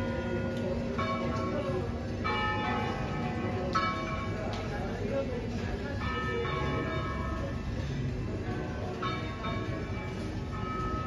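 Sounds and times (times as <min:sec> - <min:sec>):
church bells pealing: 0:00.0 - 0:11.0.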